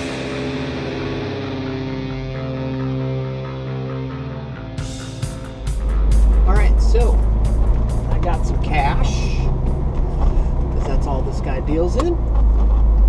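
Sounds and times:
music track: 0.0s - 10.6s
car cabin rumble: 5.0s - 13.0s
man talking: 6.4s - 7.2s, 8.1s - 9.5s.

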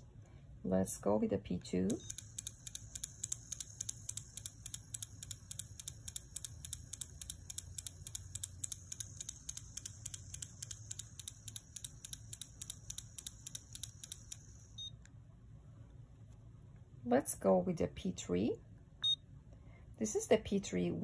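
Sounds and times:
motor whine with fast ticking: 1.9s - 14.9s.

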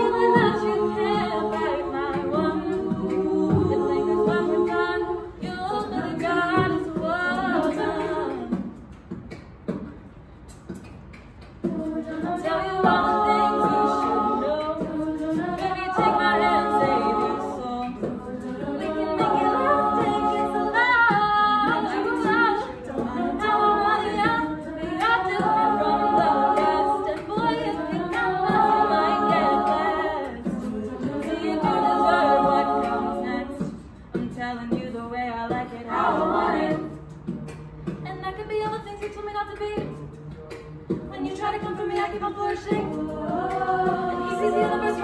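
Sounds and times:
female a cappella group singing: 0.0s - 10.0s, 10.6s - 45.0s.

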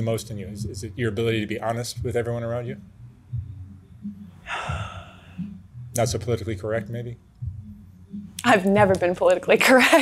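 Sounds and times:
woman breathing in: 4.4s - 5.6s.

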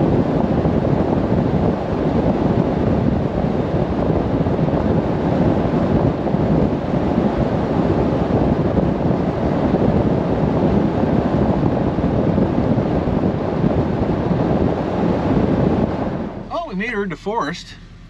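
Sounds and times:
wind rush buffeting microphone: 0.0s - 16.8s.

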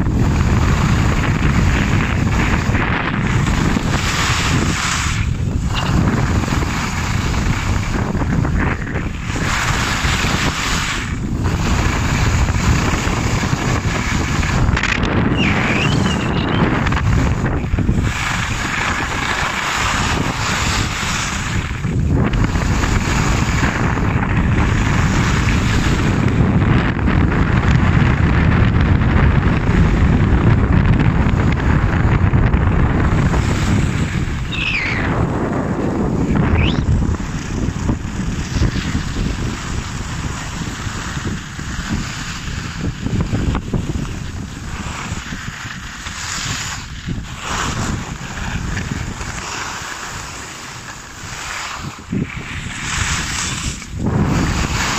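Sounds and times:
skis scraping on snow: 0.0s - 54.9s
wind rushing over microphone: 0.0s - 54.9s
brief high squeak: 15.3s - 16.6s, 34.5s - 35.1s.

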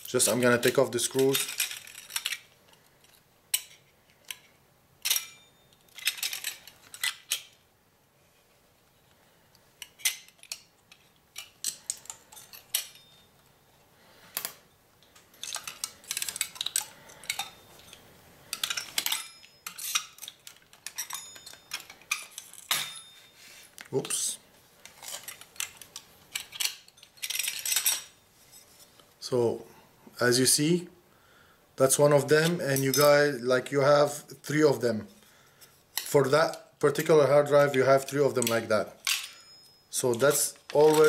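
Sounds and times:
screwdriver clicking on metal parts: 15.1s - 22.8s.

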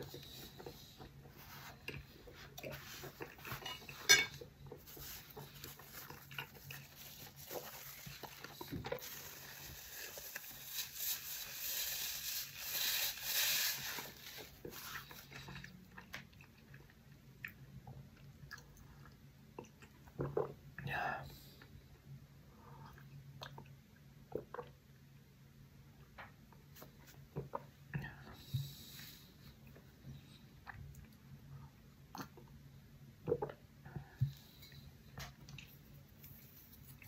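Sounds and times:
man chewing: 0.1s - 11.1s, 14.3s - 20.5s
paper napkin rustling: 4.9s - 15.3s.

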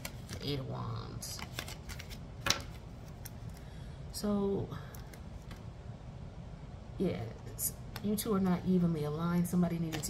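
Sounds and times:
cards being handled: 0.0s - 0.6s, 1.3s - 3.7s, 5.0s - 5.7s.

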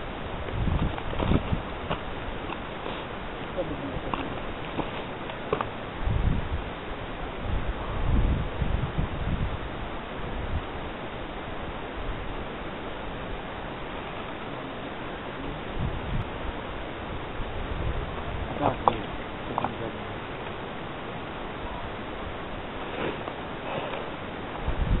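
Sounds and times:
wind buffeting microphone: 0.0s - 14.6s, 15.2s - 25.0s.

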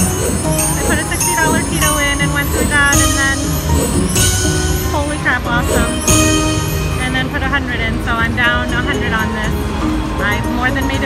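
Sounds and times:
slot machine electronic chimes: 0.0s - 9.4s.

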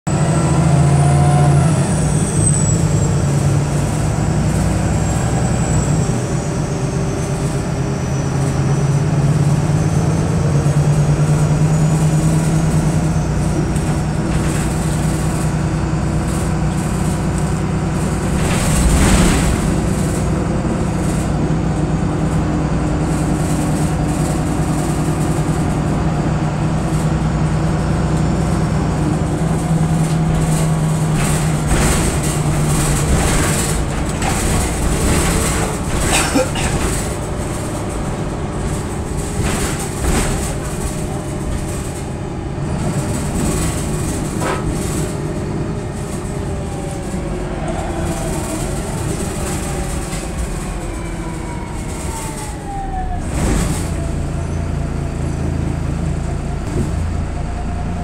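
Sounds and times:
bus engine drone: 0.0s - 58.0s.

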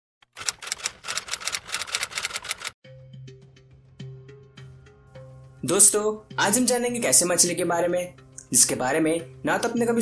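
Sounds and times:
typewriter keystroke clicks: 0.3s - 2.7s.

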